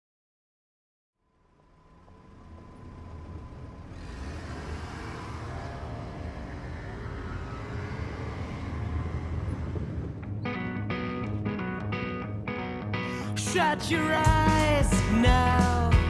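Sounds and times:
city street traffic rumble: 0:01.4 - 0:16.0.

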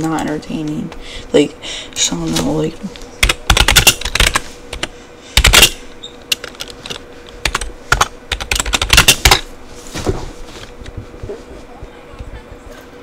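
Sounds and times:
computer keyboard typing: 0:03.2 - 0:05.7, 0:06.3 - 0:09.4.

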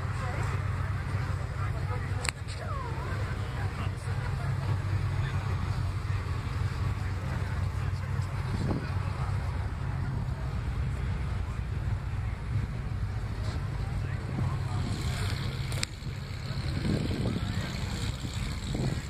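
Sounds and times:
faint crowd chatter: 0:00.0 - 0:19.0
wind buffeting microphone: 0:08.4 - 0:09.8, 0:11.8 - 0:19.0.

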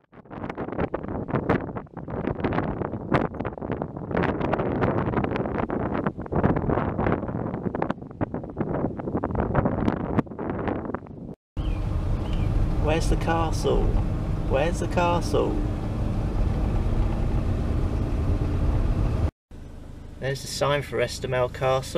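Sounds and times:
gusty wind on microphone: 0:00.0 - 0:19.3.

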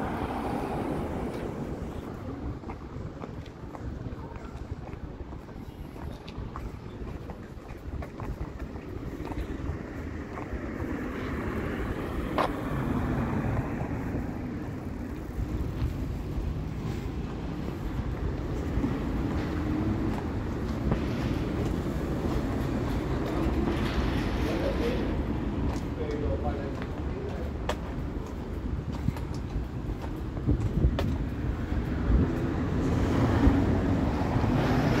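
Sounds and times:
street traffic rumble: 0:00.0 - 0:35.0.

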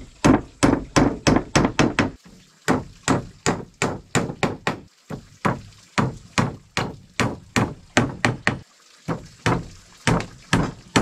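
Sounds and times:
hammer striking wood: 0:00.2 - 0:11.0.

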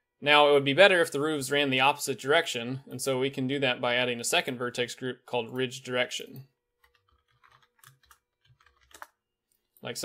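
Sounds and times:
faint keyboard typing: 0:06.8 - 0:09.8.

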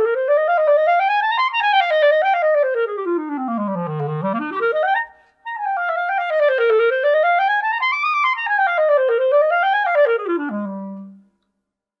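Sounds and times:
clarinet playing solo: 0:00.0 - 0:11.2.

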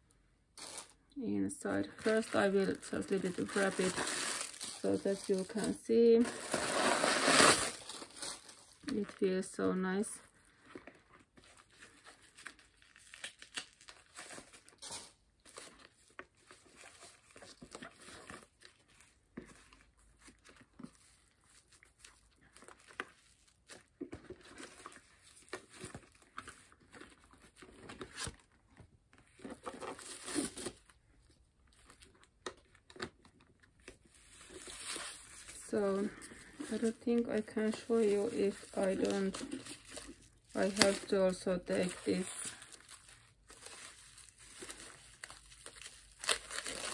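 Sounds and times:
packaging crinkling and rustling: 0:00.6 - 0:46.9.

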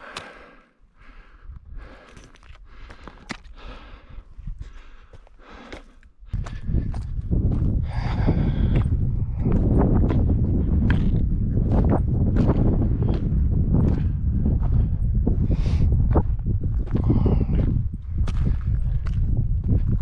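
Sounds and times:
heavy breathing: 0:00.0 - 0:09.6, 0:16.9 - 0:17.8
footsteps on stony ground: 0:00.0 - 0:20.0
wind buffeting microphone: 0:01.1 - 0:05.1, 0:06.2 - 0:20.0.

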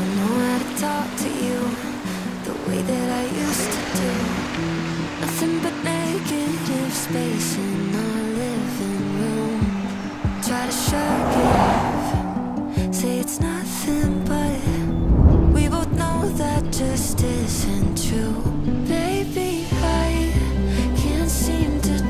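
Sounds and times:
instrumental pop music: 0:00.0 - 0:22.0
rushing noise swell: 0:08.8 - 0:18.4.

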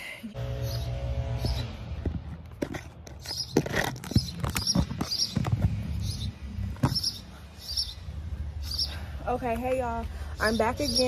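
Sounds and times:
low motor drone: 0:00.3 - 0:03.1
small bird chirping: 0:03.2 - 0:09.0.

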